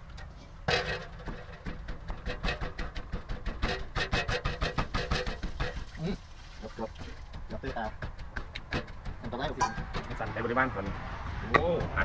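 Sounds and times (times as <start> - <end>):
pestle pounding in mortar: 1.2 - 6.0, 7.0 - 12.0.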